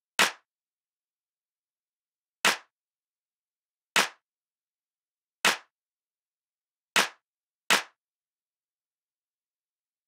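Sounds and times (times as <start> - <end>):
sharp hand claps: 0.2 - 0.5, 2.4 - 2.8, 4.0 - 4.2, 5.4 - 5.8, 7.0 - 8.0.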